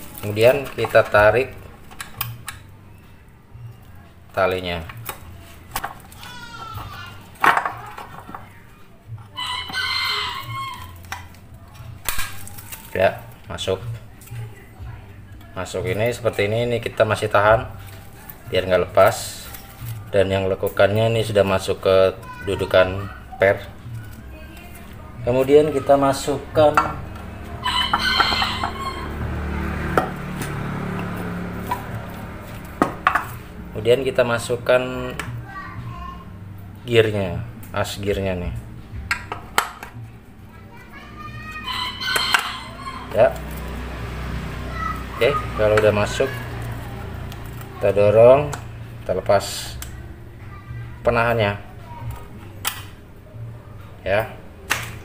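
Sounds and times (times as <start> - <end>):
rooster crowing: 9.3 - 11.0, 27.6 - 29.4, 41.5 - 43.4.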